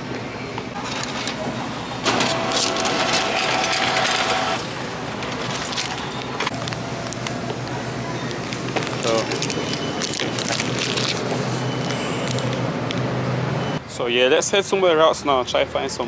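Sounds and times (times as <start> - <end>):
store background noise: 0.0 - 16.0
receipt printer whirring: 0.8 - 7.5.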